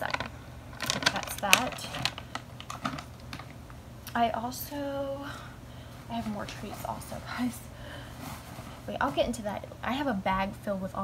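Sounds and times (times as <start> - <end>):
plastic packaging crinkling: 0.0 - 3.6.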